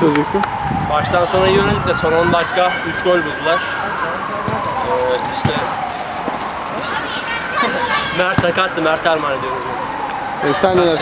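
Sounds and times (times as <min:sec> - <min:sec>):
men talking: 0:00.0 - 0:11.0.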